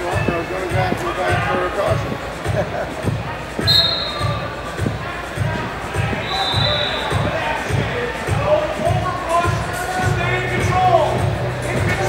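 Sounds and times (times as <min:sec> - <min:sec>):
crowd chatter: 0:00.0 - 0:12.0
short high whistle blast: 0:03.6 - 0:04.4, 0:06.2 - 0:07.2.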